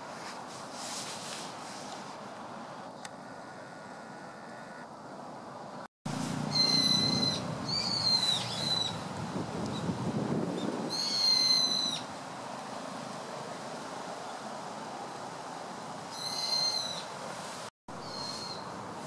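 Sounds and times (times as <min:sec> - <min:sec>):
bird whistling calls: 0:06.5 - 0:09.0, 0:10.9 - 0:12.1, 0:16.1 - 0:17.1, 0:18.0 - 0:18.6.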